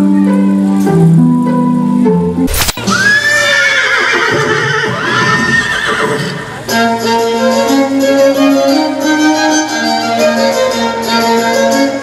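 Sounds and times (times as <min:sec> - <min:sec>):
music: 0:00.0 - 0:03.2, 0:06.6 - 0:12.0
horse whinnying: 0:02.8 - 0:06.7.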